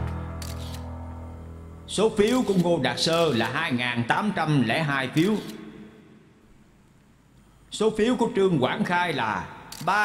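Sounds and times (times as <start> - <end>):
camera shutter clicks: 0.1 - 0.9, 2.2 - 3.6, 5.2 - 5.6, 9.7 - 10.0.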